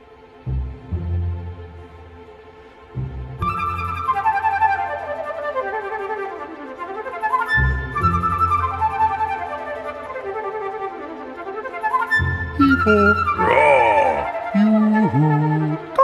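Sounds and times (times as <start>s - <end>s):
flute melody: 3.4s - 16.0s.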